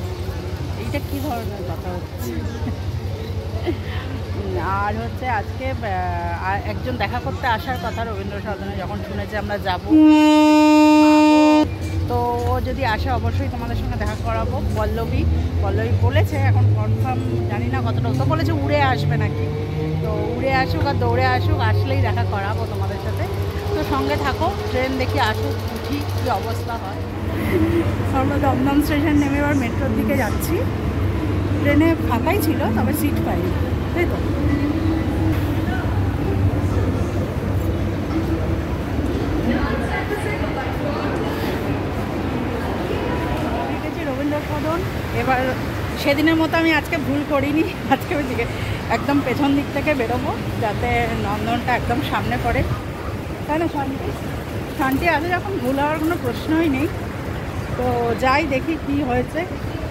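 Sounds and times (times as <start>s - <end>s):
faint voices: 0.0s - 59.9s
metro train rumble: 0.0s - 59.9s
train horn: 9.9s - 11.7s.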